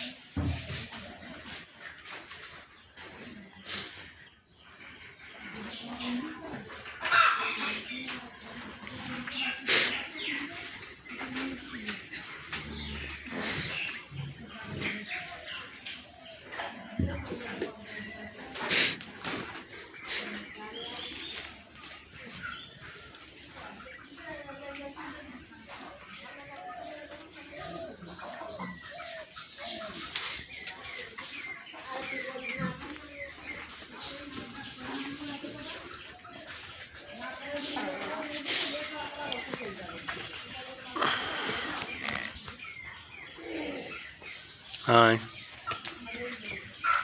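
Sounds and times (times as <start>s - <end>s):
birds chirping: 0.0s - 47.0s.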